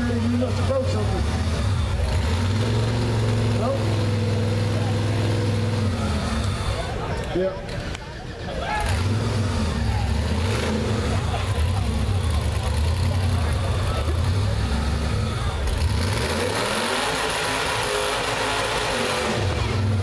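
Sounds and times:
engine revving at high revs: 0.0s - 7.1s, 8.7s - 20.0s
crowd voices: 0.0s - 20.0s.

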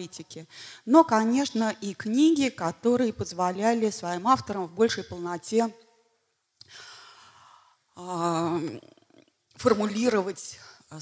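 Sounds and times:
woman breathing into microphone: 6.7s - 7.8s.

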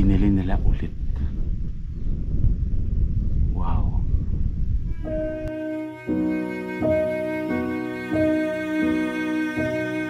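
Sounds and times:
wind buffeting microphone: 0.0s - 5.8s.

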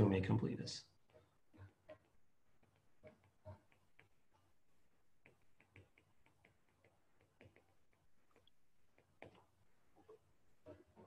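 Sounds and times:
stylus tapping glass screen: 0.9s - 10.3s.

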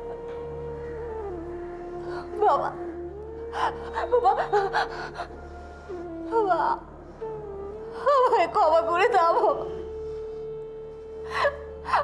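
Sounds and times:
woman sobbing: 3.6s - 5.4s.

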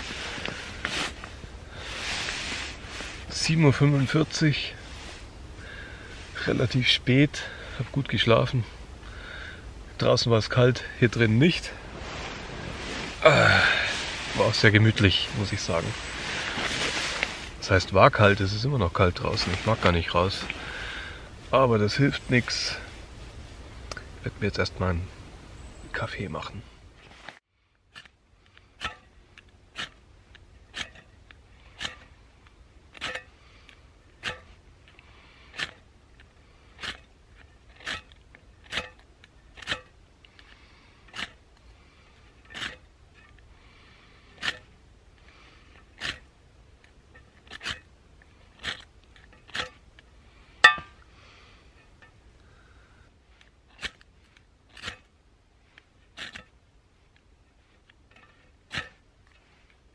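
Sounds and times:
ferro rod scraping: 0.0s - 5.3s, 11.2s - 17.7s, 27.0s - 32.2s, 32.9s - 41.4s, 42.2s - 43.5s, 44.3s - 50.0s, 53.4s - 59.8s.

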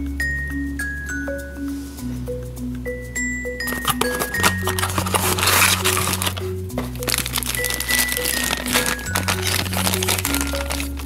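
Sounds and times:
background music with bass line: 0.0s - 11.0s
plastic packaging crinkling: 3.6s - 11.0s.

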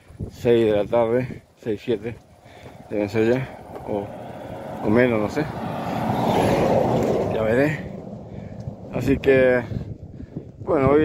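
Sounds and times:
lorry passing close by: 2.0s - 10.6s.

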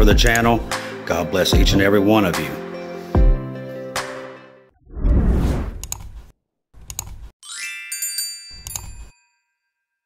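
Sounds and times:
sharp clicks: 0.3s - 0.5s, 5.7s - 6.2s, 6.8s - 7.3s.

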